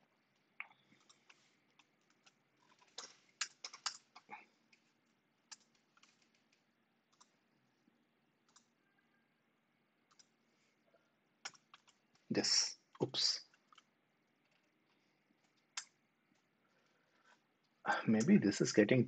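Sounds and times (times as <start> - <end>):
computer keyboard and mouse clicks: 0.6 - 4.9, 5.5 - 7.4, 8.4 - 8.8, 10.1 - 10.4, 11.4 - 12.3, 13.0 - 16.5.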